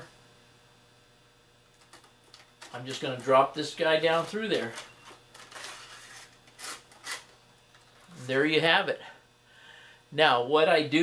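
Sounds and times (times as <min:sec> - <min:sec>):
wire rustling through foam: 0:03.9 - 0:07.3
wire scraping foam: 0:04.1 - 0:07.3.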